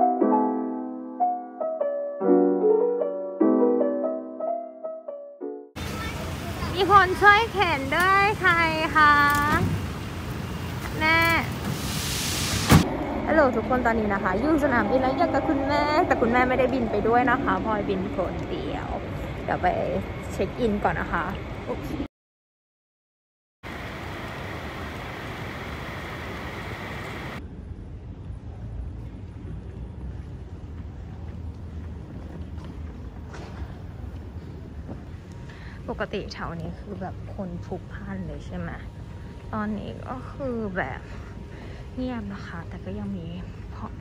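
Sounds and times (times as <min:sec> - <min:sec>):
low hum of traffic: 0:05.8 - 0:22.1, 0:23.7 - 0:44.0
hiss: 0:11.6 - 0:12.8.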